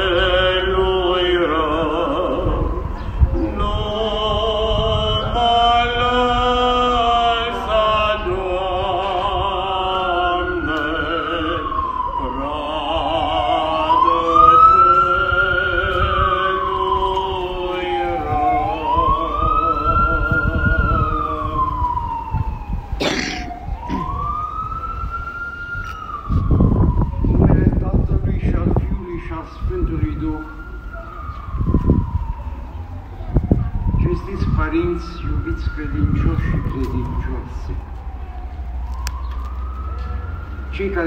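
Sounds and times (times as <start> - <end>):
low rumble: 0.0 - 22.9
emergency siren wailing: 0.0 - 41.0.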